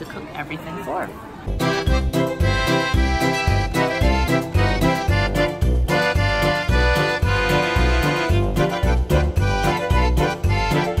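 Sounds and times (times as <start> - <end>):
piano accordion melody: 1.5 - 11.0
steady bass beat: 1.6 - 11.0.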